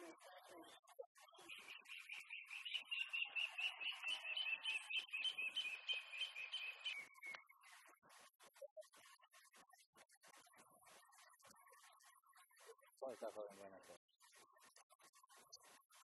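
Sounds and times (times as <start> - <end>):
bird chirping: 0.0 - 7.9
faint outdoor background noise: 0.0 - 16.0.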